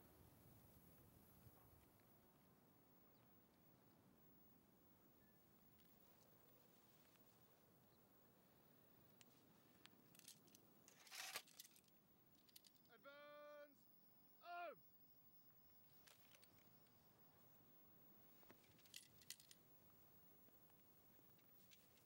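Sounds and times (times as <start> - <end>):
rifles and equipment rattling: 10.1 - 12.9, 18.5 - 19.6.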